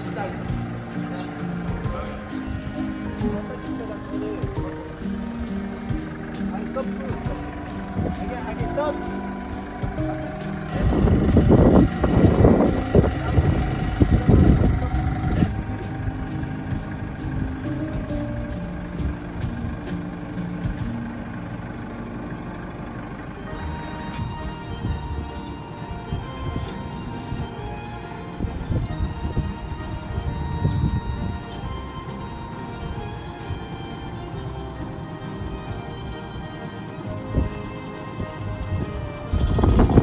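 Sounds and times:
background music: 0.0 - 40.0
forklift engine running: 0.0 - 40.0.

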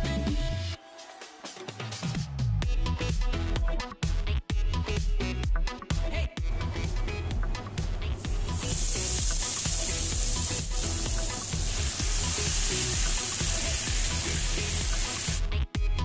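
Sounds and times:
background music with steady beat: 0.0 - 16.0
paste sizzling in hot oil: 8.2 - 15.4.

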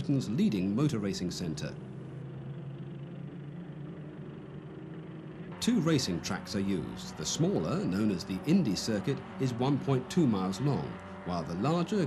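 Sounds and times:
racing car engines droning: 0.0 - 12.0.

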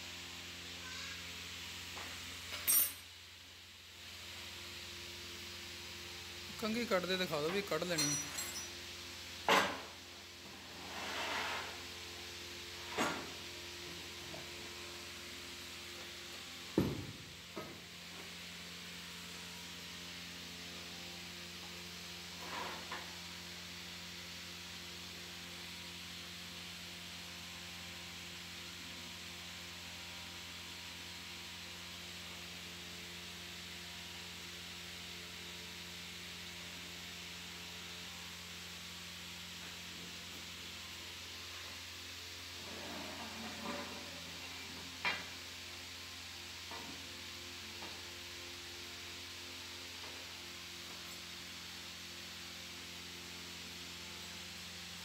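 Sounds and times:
steady hum and hiss: 0.0 - 55.0
metal knocks and clinks: 8.0 - 8.7.

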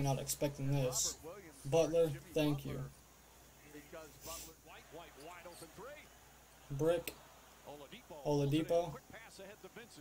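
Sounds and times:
commentator talking: 0.0 - 3.0, 7.7 - 10.0.

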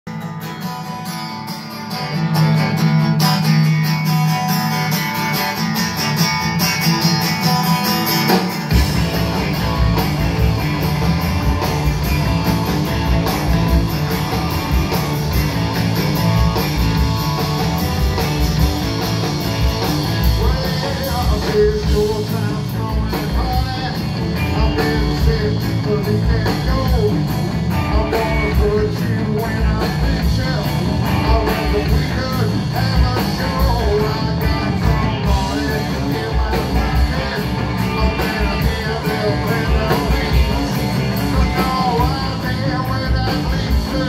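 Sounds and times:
bass and drums: 0.1 - 44.0
guitars playing: 0.1 - 44.0
live rock band playing: 0.1 - 44.0.

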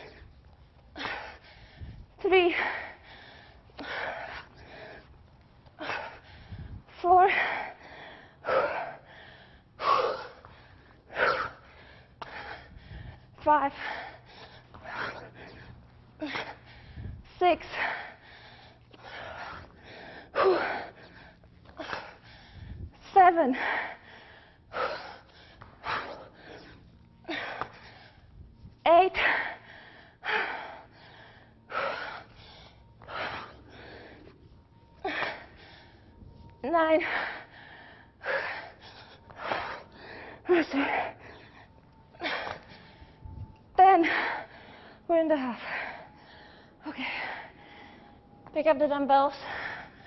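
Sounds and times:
woman gasping breaths: 0.0 - 48.5, 49.3 - 50.0.

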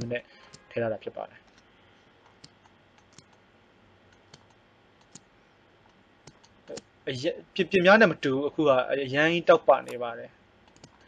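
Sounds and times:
computer mouse clicks: 0.0 - 0.7, 1.5 - 3.4, 4.1 - 6.9, 10.6 - 11.0
man speaking: 0.0 - 1.4, 6.7 - 10.3
faint steady hiss: 0.0 - 11.0.

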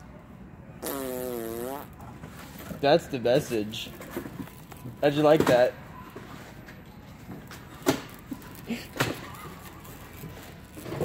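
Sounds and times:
buzzy fart sound: 0.8 - 2.0.

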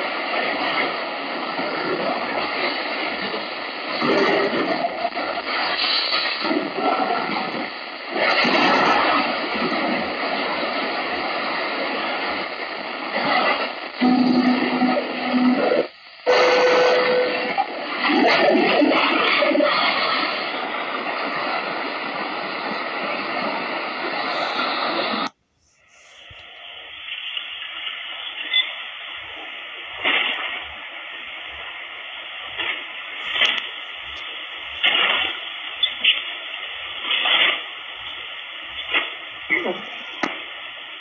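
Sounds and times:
radio static hiss: 0.0 - 41.0
steady radio tone: 0.0 - 41.0.

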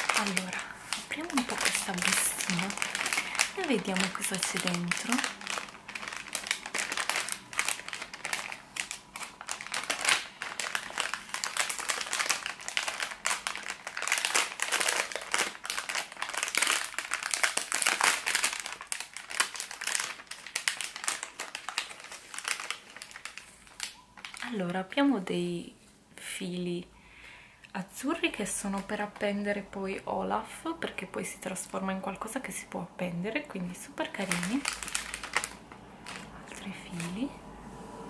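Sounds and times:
foil sachets rustling: 0.0 - 25.0, 34.0 - 37.3
plastic bag crinkling: 0.0 - 25.1, 33.6 - 37.3.

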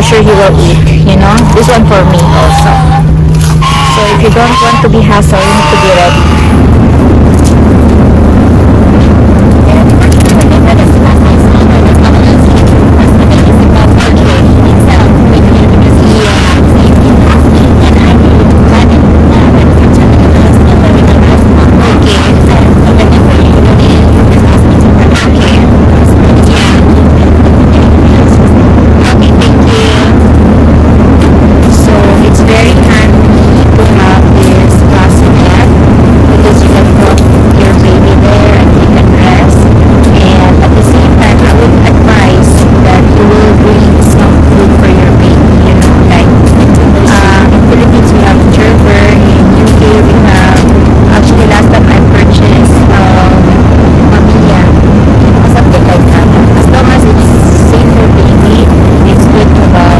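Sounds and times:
airliner cabin drone: 0.0 - 59.9.

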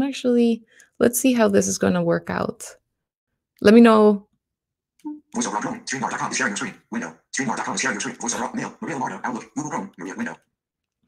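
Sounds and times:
synthetic voice reading fast: 5.1 - 10.4.

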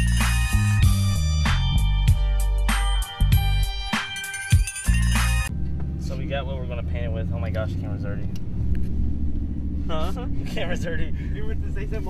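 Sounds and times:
people talking: 6.0 - 8.3, 9.9 - 12.0.

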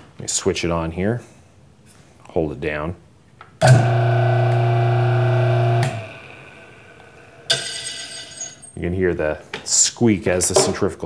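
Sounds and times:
electric motor humming: 3.6 - 7.5.

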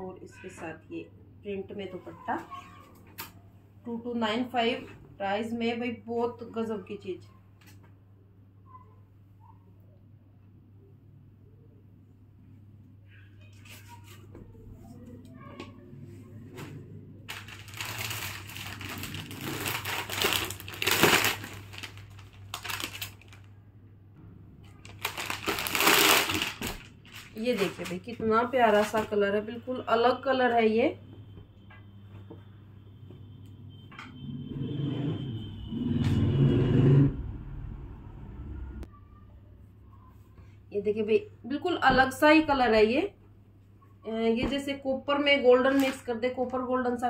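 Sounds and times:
plastic packaging crinkling: 17.3 - 23.5, 24.7 - 29.1, 45.7 - 46.1.

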